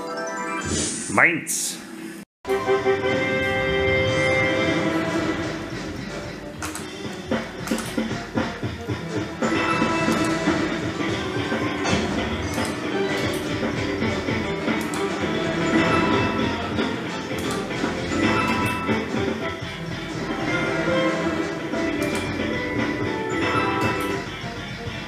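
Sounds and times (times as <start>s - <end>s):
slot machine game music: 0.0s - 1.0s, 2.5s - 25.0s
reels landing clicks: 7.6s - 8.1s.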